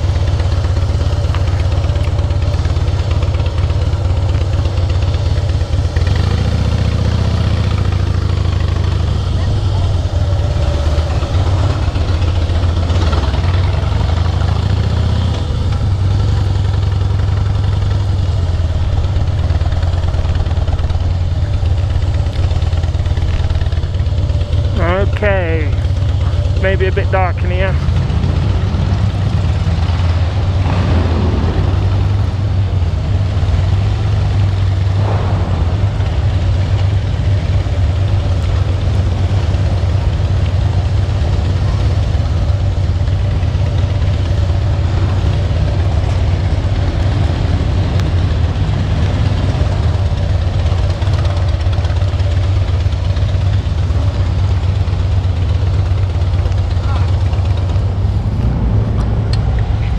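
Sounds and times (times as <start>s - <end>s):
motorcycle engine running at low speed: 0.0s - 59.9s.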